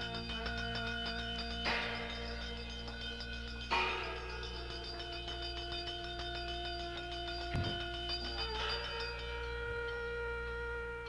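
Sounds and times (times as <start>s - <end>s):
ringing sustained tones: 0.0s - 11.0s.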